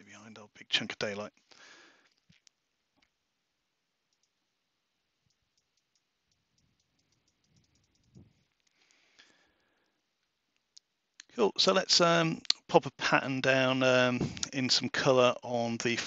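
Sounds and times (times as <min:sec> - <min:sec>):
computer mouse clicks: 0:04.1 - 0:04.4, 0:05.2 - 0:09.0.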